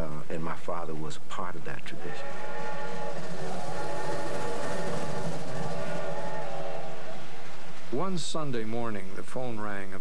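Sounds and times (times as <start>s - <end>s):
train whistle chord: 2.2s - 7.9s
low train rumble: 2.2s - 9.3s.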